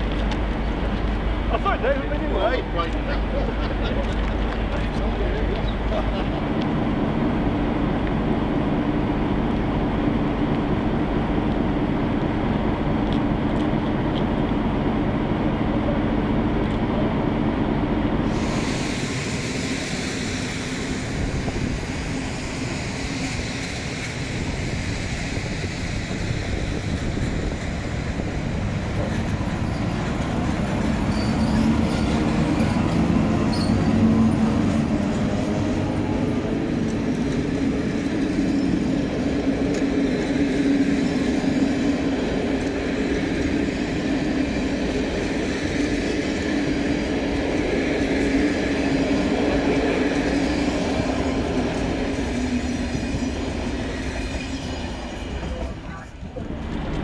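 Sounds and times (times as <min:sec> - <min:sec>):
train wheels rumbling on rail: 0:00.0 - 0:57.0
locomotive whine: 0:02.6 - 0:57.0.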